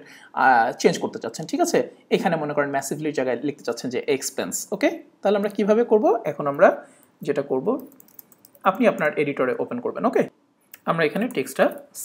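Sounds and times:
man talking: 0.0s - 7.9s, 8.6s - 12.0s
computer keyboard typing: 7.7s - 9.2s.

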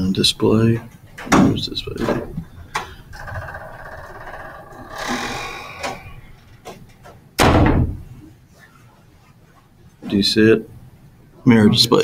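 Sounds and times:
loud deep thump: 7.4s - 8.1s.

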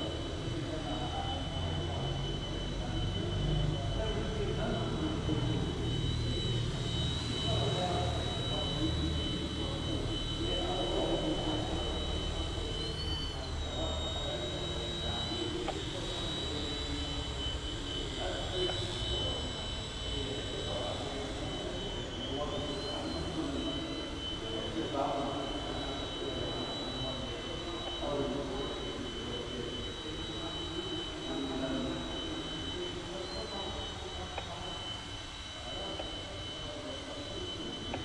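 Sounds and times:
toy helicopter rotor whine: 0.0s - 38.0s.

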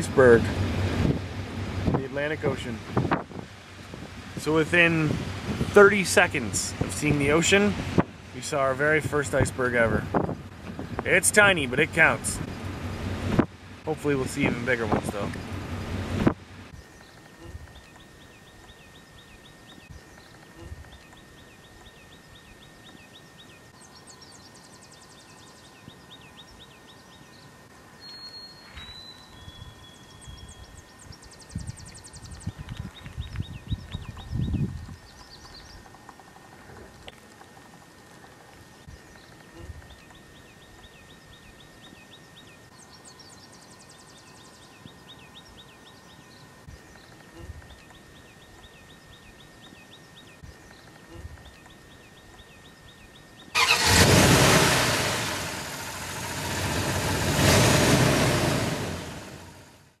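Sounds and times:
faint steady tone: 0.0s - 32.9s, 35.8s - 53.5s
small birds chirping: 16.6s - 54.0s
loud engine-like rushing noise: 53.6s - 59.9s.

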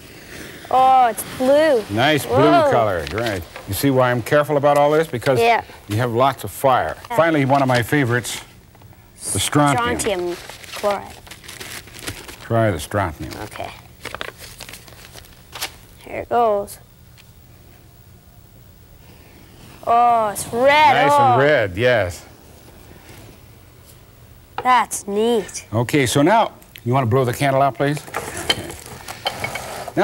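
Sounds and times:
low hiss: 0.0s - 10.8s, 15.4s - 30.0s
flash paper crinkling: 1.1s - 5.3s, 9.3s - 16.0s.

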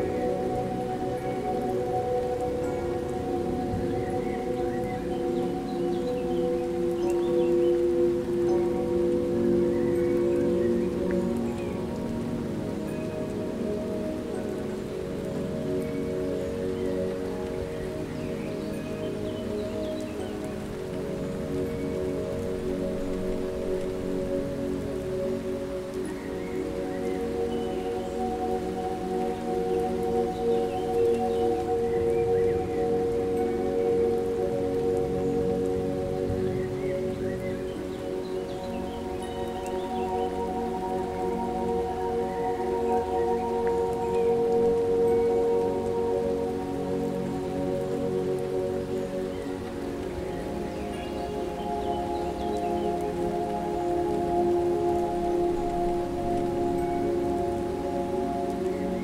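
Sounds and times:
rain-like hiss: 0.0s - 59.0s
soft held pad tones: 0.0s - 59.0s.

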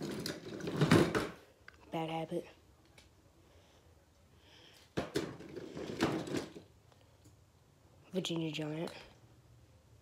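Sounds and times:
toy trucks clattering: 0.0s - 1.4s, 5.0s - 6.7s.

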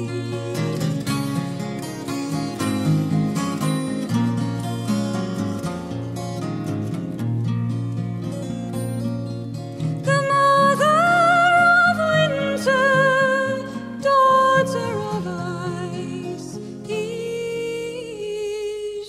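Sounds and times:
woman singing with vibrato: 0.0s - 1.3s, 10.0s - 19.0s
acoustic guitar playing: 0.0s - 19.0s.

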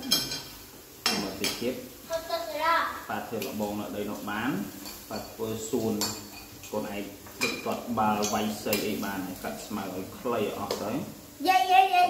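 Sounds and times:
utensils clinking on metal pan: 0.0s - 1.7s, 4.1s - 9.5s
people talking: 1.1s - 12.0s.

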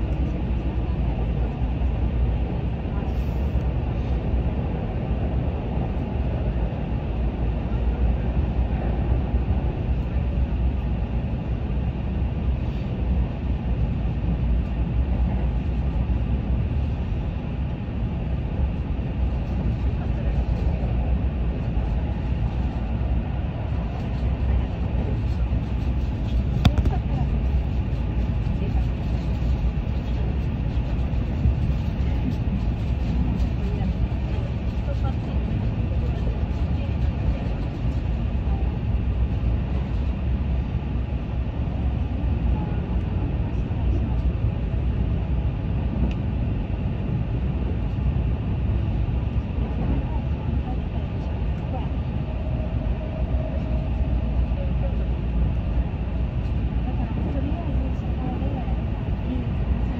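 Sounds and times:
train running rumble: 0.0s - 59.9s.

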